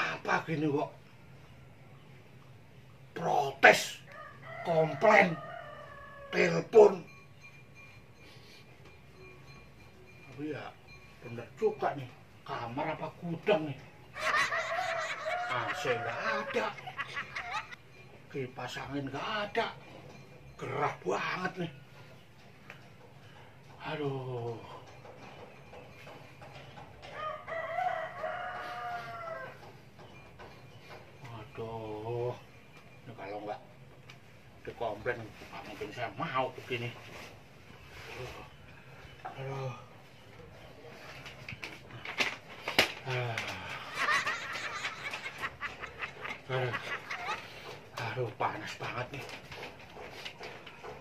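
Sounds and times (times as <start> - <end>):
rooster crowing: 4.0 - 6.6, 14.2 - 17.7, 27.0 - 29.8.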